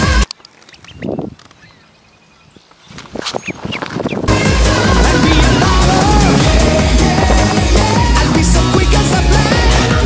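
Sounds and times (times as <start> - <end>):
duckling peeping: 3.3 - 6.2
loud electronic dance music: 4.3 - 10.0.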